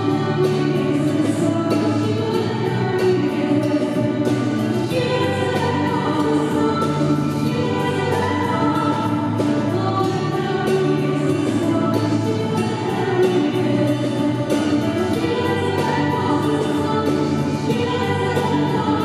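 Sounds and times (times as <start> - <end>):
bass guitar: 0.0 - 19.0
group of voices singing: 0.0 - 19.0.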